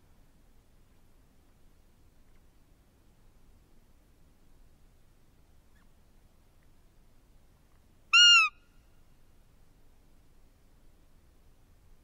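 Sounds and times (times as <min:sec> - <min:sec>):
high piping deer call: 0:08.1 - 0:08.7.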